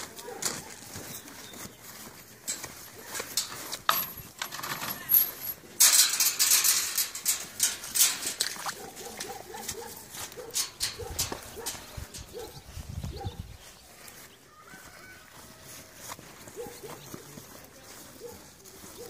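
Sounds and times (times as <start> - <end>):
farm animal calling: 8.6 - 19.0.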